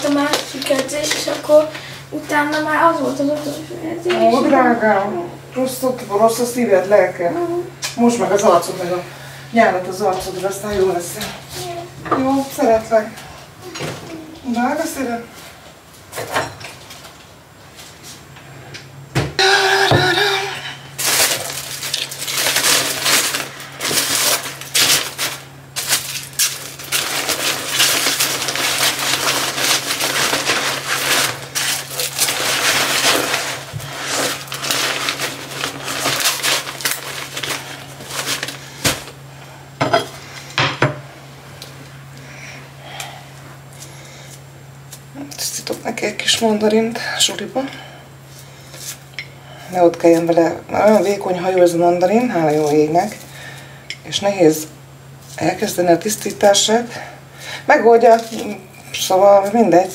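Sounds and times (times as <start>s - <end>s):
foil and packaging crinkling: 0.0s - 3.5s, 19.5s - 39.3s, 57.8s - 59.9s.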